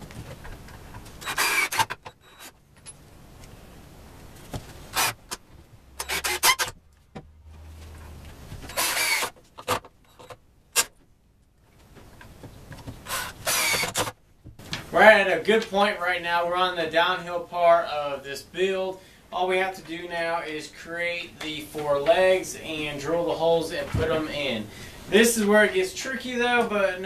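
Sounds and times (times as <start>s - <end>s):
cordless drill driving screws: 1.2s - 2.6s, 4.9s - 5.3s, 6.0s - 6.8s, 8.7s - 10.9s, 13.0s - 14.2s.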